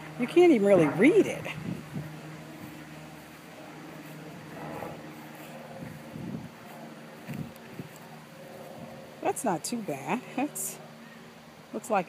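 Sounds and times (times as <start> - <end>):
steady low hum: 0.0 - 12.0.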